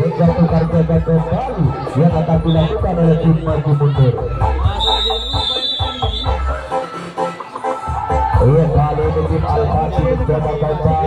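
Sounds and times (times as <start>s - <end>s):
crowd voices: 0.0s - 11.0s
high-pitched whistle blast: 4.8s - 6.6s.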